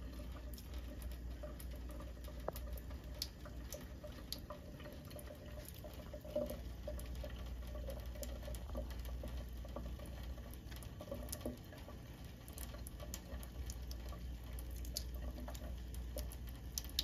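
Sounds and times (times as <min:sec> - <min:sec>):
cat lapping water: 0:00.0 - 0:17.0
water trickling into sink: 0:00.0 - 0:17.0.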